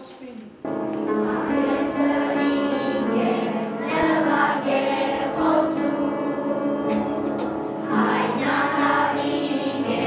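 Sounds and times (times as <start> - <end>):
musical backing: 0.0 - 10.0
children's choir singing: 0.7 - 10.0.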